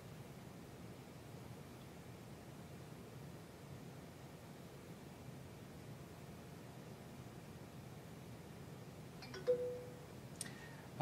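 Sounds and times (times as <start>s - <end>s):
two-note electronic chime: 9.2s - 10.1s.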